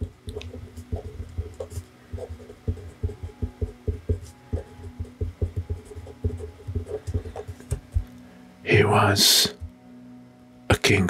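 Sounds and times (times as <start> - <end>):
marker writing on paper: 0.0 - 8.1.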